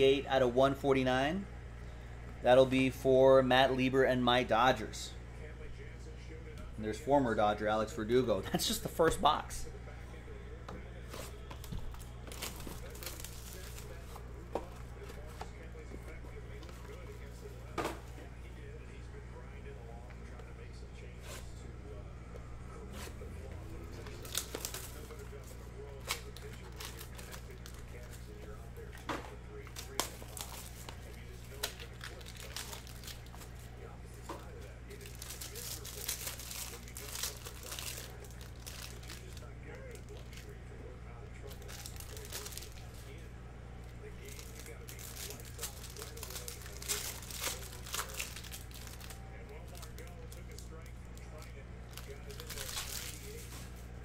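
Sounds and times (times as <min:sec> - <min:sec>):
steady low hum: 0:00.0 - 0:54.0
plastic wrapper tearing and crinkling: 0:11.9 - 0:14.1, 0:24.0 - 0:25.4, 0:26.0 - 0:28.2, 0:29.7 - 0:33.5, 0:34.9 - 0:40.6, 0:41.4 - 0:43.0, 0:44.2 - 0:53.6.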